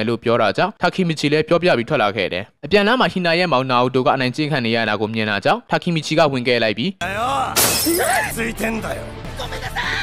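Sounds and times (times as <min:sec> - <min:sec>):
loud shattering crash: 0:07.6 - 0:08.4.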